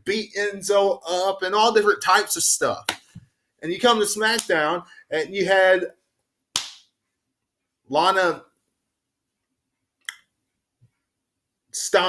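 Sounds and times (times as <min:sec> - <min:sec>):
sharp smack: 0:06.6 - 0:06.8.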